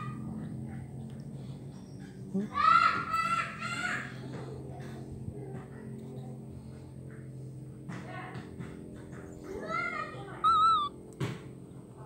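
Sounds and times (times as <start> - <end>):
baby monkey high call: 10.3 - 11.0.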